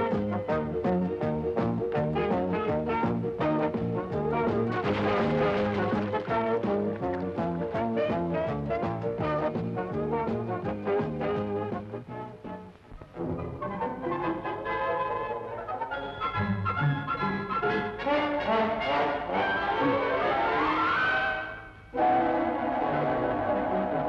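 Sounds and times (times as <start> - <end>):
comic film music with brass: 0.0 - 24.0.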